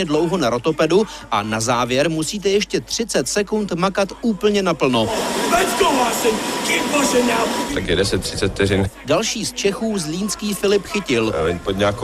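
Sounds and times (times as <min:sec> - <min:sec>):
steady rushing noise: 0:05.1 - 0:08.4.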